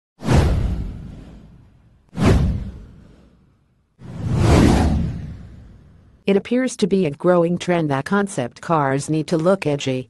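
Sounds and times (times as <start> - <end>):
whoosh with deep rumble: 0.2 - 6.2.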